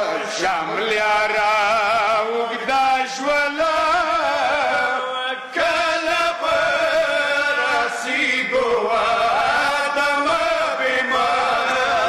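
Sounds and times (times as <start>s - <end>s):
men chanting into microphones: 0.0s - 12.0s.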